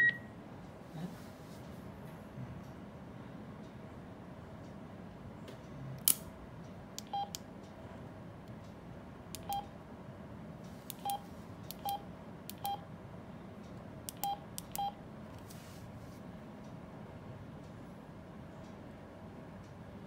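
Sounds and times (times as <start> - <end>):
radio keypad beeps: 0.0 - 0.2
sharp click: 6.0 - 6.3.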